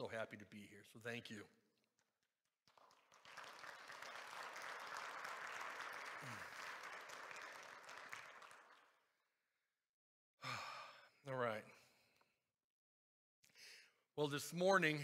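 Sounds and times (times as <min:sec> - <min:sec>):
congregation applauding: 0:02.7 - 0:09.0.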